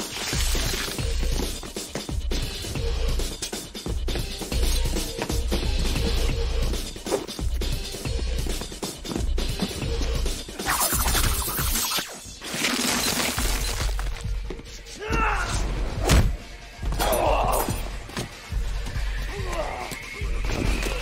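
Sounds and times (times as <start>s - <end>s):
hissing crackling disintegration bursts: 0.0s - 1.1s, 10.6s - 13.7s
techno music with pulsing bass: 0.3s - 12.3s.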